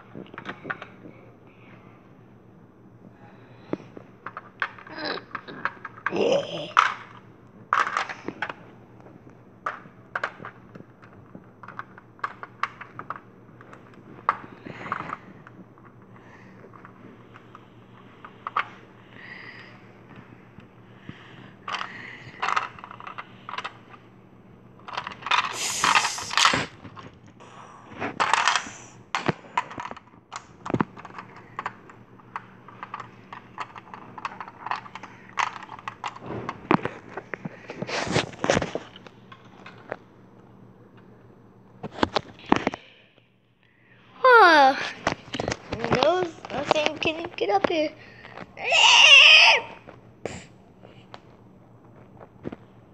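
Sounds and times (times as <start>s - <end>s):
faint steady hum: 0.0s - 52.9s
objects being handled: 4.2s - 18.9s, 21.5s - 24.0s, 24.8s - 27.3s, 27.9s - 40.1s.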